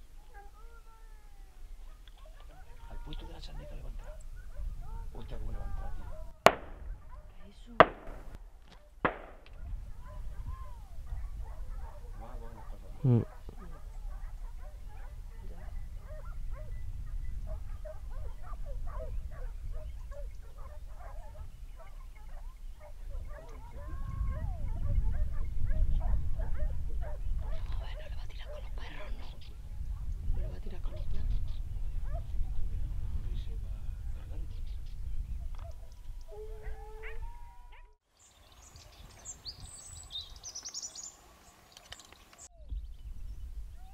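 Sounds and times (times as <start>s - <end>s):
hounds yelping and barking: 1.5s - 7.6s, 8.2s - 30.1s, 30.9s - 32.6s, 35.3s - 38.0s
rifle shots: 6.5s - 6.9s, 7.8s - 8.4s, 9.0s - 9.6s.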